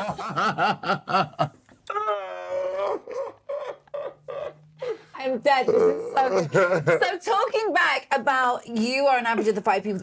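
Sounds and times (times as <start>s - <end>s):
man laughing: 2.9s - 4.6s, 5.8s - 7.1s.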